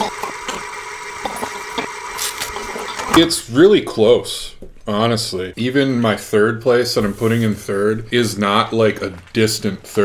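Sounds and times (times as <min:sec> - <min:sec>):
mechanical whirring hum: 0:00.0 - 0:03.5.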